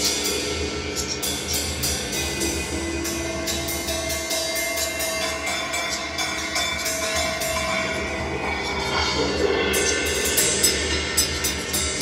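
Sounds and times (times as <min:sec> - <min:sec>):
cymbals ringing: 0:00.0 - 0:12.0
drum strokes: 0:00.0 - 0:12.0.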